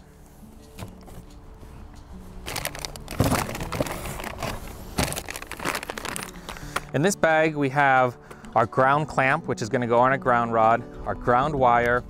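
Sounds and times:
quiet background music: 0.0 - 12.0
plastic bag crinkling: 2.4 - 6.8.

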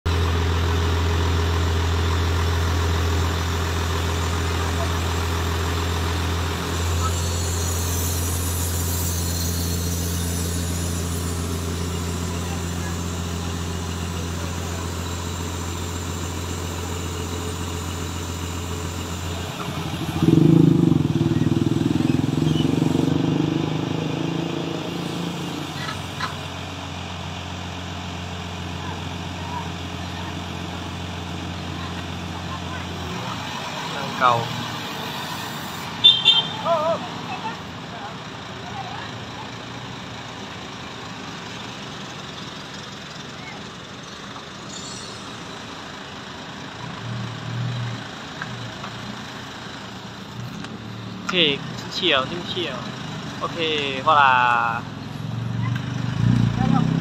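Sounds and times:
truck engine running: 0.0 - 57.0.

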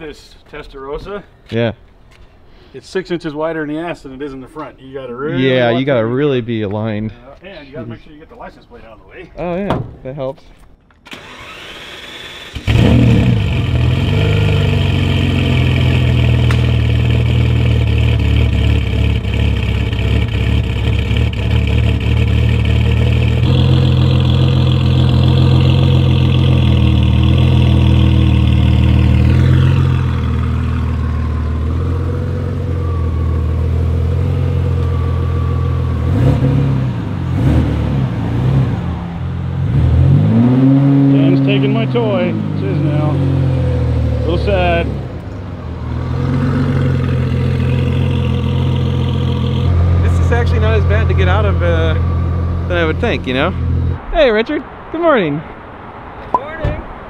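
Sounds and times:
car engine starting and idling: 10.9 - 57.0
engine revving: 11.1 - 54.1.

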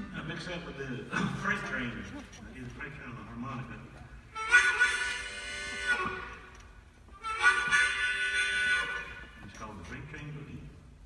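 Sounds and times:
harmonica chords: 4.2 - 9.5.

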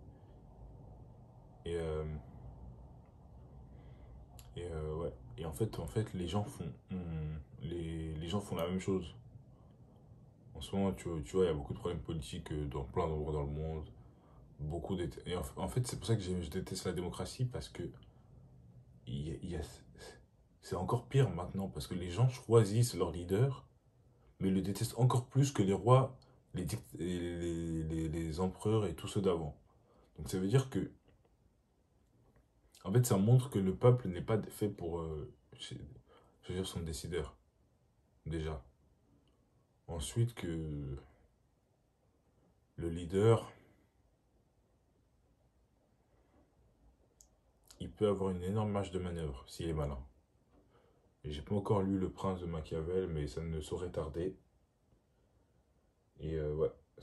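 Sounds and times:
man speaking: 1.6 - 2.3, 4.4 - 9.2, 10.5 - 13.9, 14.6 - 18.0, 19.0 - 23.7, 24.4 - 29.6, 30.2 - 31.0, 32.8 - 37.4, 38.3 - 38.7, 39.9 - 41.2, 42.8 - 43.7, 47.7 - 50.1, 51.2 - 54.4, 56.2 - 56.9
man murmuring: 6.6 - 8.0.

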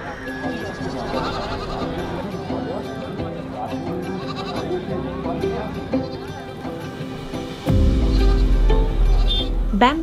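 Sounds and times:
crowd chatter: 0.0 - 8.4
goats bleating: 0.5 - 2.2, 4.0 - 4.8.

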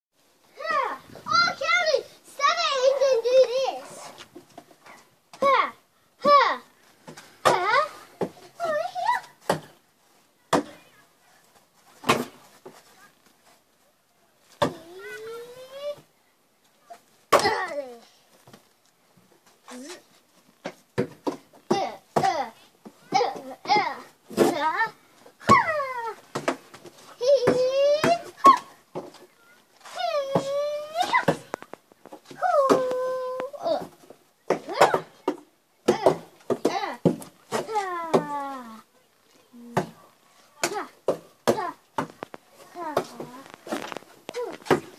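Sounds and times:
child crying out: 32.4 - 33.6.

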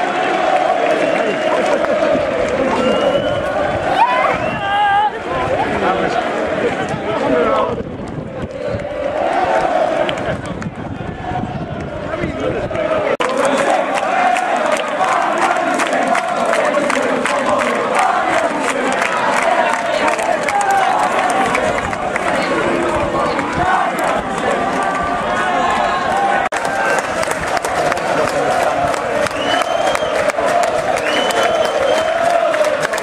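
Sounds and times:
crowd shouting: 0.0 - 33.0.

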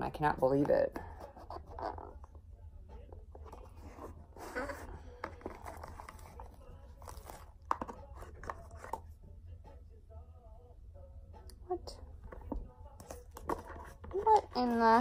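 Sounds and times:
paper crinkles and rustles: 5.3 - 9.0.

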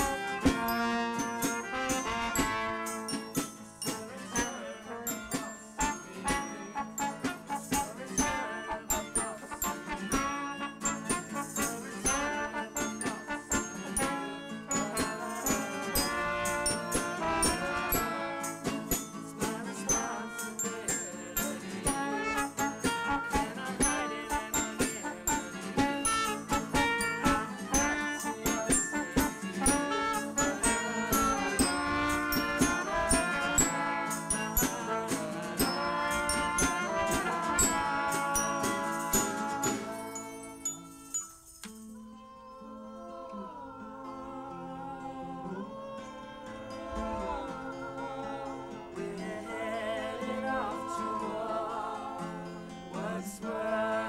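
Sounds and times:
percussive strikes: 0.0 - 4.5
pitched instruments: 0.0 - 42.6.

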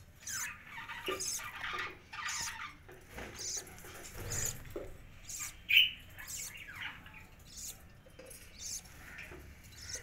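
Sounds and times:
budgerigar squawking: 9.7 - 10.0.

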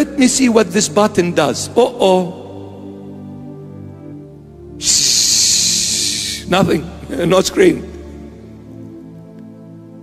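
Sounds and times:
soft background music: 0.0 - 10.0
man hissing into a microphone: 4.8 - 6.6.

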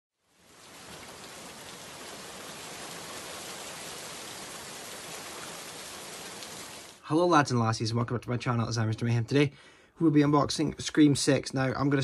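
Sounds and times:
steady rain: 0.2 - 7.0.

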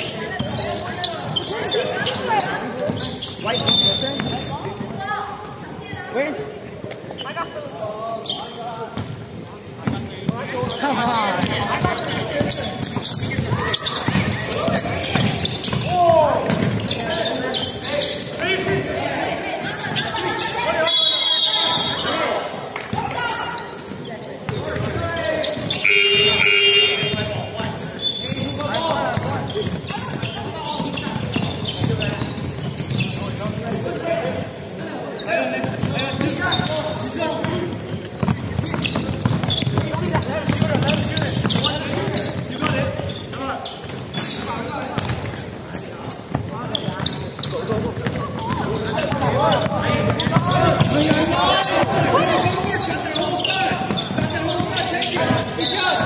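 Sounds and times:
basketball bouncing on hardwood: 38.2 - 42.7
players shouting: 48.1 - 56.0.

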